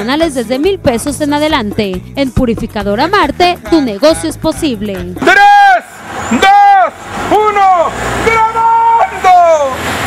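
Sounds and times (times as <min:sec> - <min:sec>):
rising and falling countdown calls: 0:02.9 - 0:09.9.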